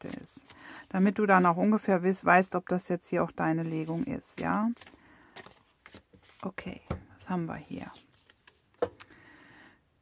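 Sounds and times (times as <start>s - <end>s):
card sliding rustle: 3.7s - 6.4s.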